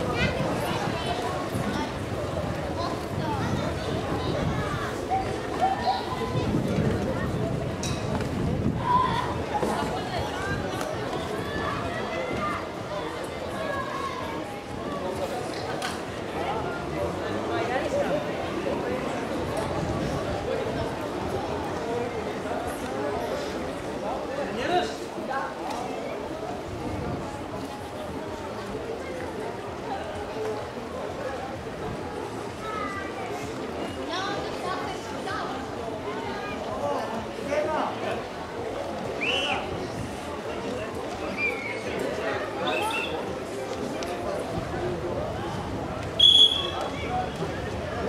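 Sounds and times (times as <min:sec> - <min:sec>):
indistinct chatter: 0:00.0 - 0:48.0
outdoor background noise: 0:00.0 - 0:48.0
people talking: 0:00.0 - 0:48.0.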